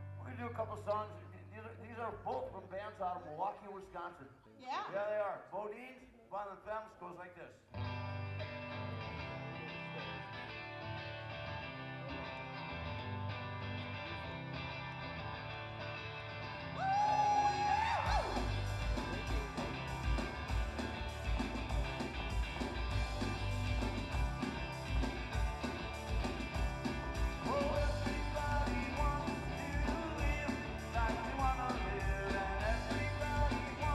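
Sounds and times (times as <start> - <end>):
lead guitar line: 7.7 - 33.9
live rock music: 7.8 - 33.9
drums steady beat: 18.1 - 33.9.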